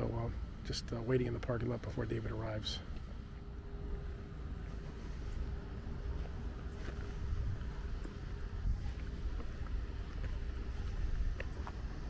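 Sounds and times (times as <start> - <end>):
faint steady hum: 0.0 - 12.0
wind buffeting microphone: 3.4 - 12.0.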